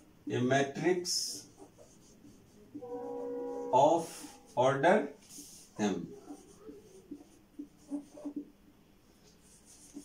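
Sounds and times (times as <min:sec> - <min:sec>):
marker pen writing on whiteboard: 0:01.0 - 0:04.6, 0:05.2 - 0:10.0.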